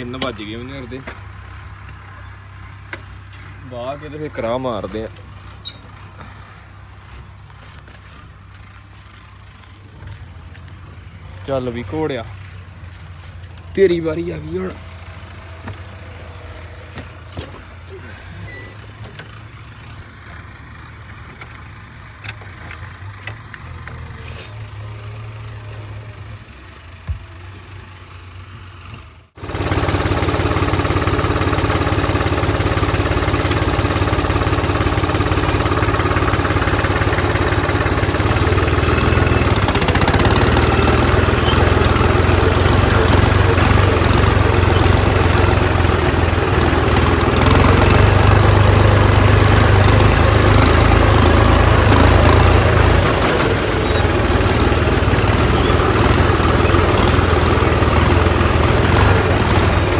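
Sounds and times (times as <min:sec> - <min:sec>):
tractor diesel engine running: 0:00.0 - 0:59.9.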